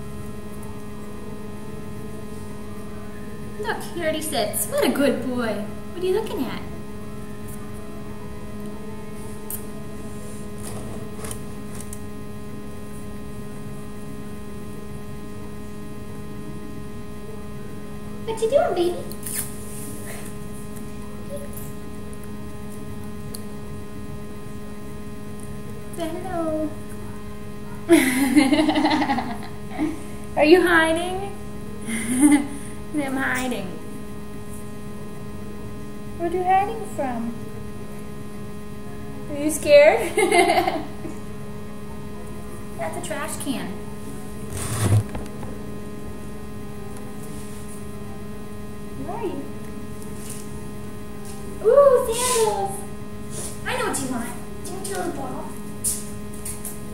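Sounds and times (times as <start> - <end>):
steady electrical hum: 0.0 - 56.9
woman speaking: 3.6 - 6.7, 18.3 - 19.1, 26.0 - 26.8, 30.4 - 31.4, 33.0 - 33.8, 36.2 - 37.4, 39.3 - 40.2, 42.8 - 43.8, 49.0 - 49.6, 51.6 - 52.9, 53.6 - 55.6.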